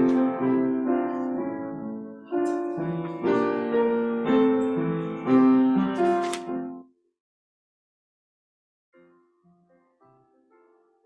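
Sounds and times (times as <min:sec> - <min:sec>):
piano playing slow hymn: 0:00.0 - 0:06.9, 0:09.0 - 0:11.0.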